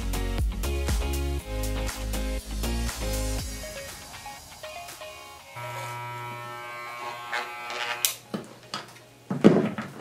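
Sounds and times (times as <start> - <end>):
hair clipper buzzing: 5.6 - 8.2.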